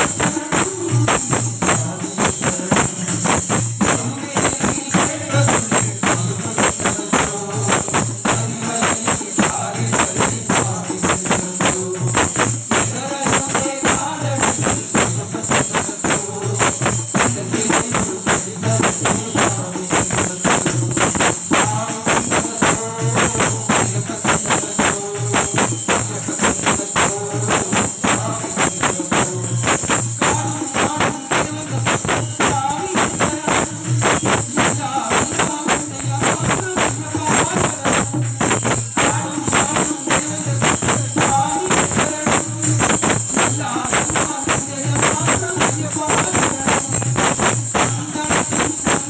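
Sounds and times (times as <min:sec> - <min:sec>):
man singing into microphone: 0:00.0 - 0:49.0
tambourine jingling: 0:00.0 - 0:49.0.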